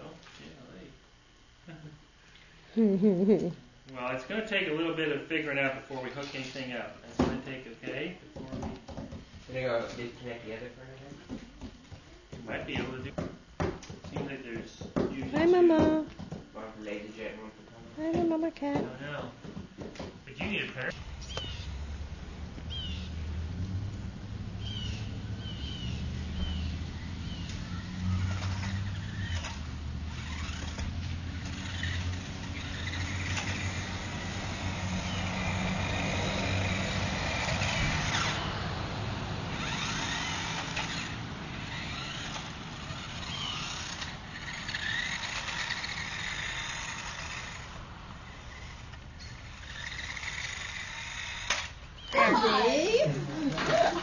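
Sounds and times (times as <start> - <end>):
vehicle engine running: 20.3 - 52.1
bird chirps: 21.2 - 21.8, 22.7 - 23.2, 24.6 - 28.4.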